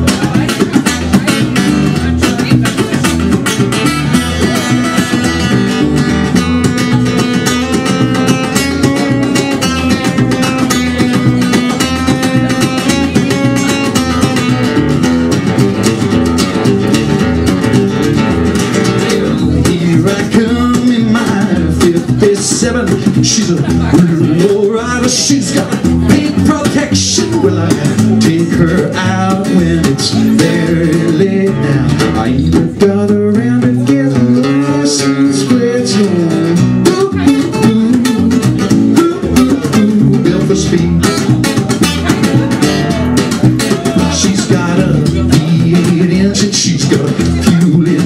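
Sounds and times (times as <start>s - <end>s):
acoustic guitar strumming: 0.0s - 48.0s.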